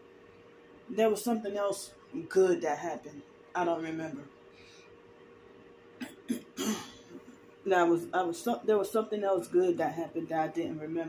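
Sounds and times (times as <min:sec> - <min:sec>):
woman coughing: 0:06.0 - 0:07.3.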